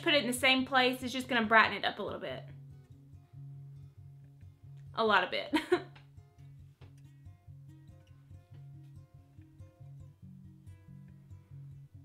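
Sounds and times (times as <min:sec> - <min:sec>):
plucked guitar: 0:00.0 - 0:12.0.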